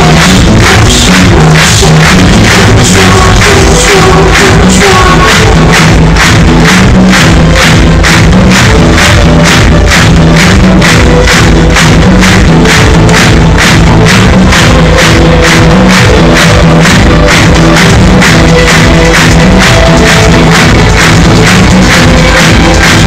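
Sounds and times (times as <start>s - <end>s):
electronic pop band playing: 0.0s - 23.0s.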